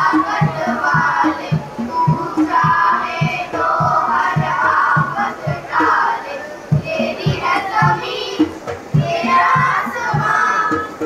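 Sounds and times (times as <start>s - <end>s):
children singing in unison: 0.0s - 11.0s
steady low beat: 0.0s - 11.0s.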